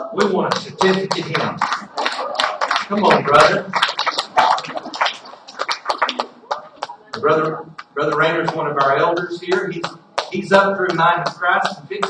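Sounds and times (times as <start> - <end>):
scattered hand claps: 0.2 - 12.0.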